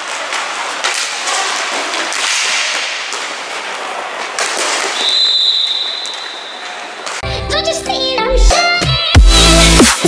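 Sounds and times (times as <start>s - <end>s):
hockey sticks and puck clacking: 0.0s - 7.2s
referee's whistle: 5.0s - 6.7s.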